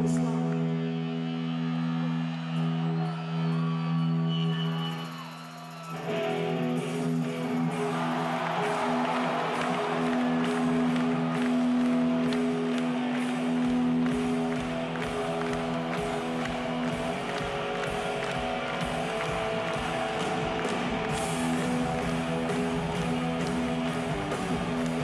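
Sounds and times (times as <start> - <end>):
electric guitar chords: 6.0 - 25.0
live rock band playing: 6.0 - 25.0.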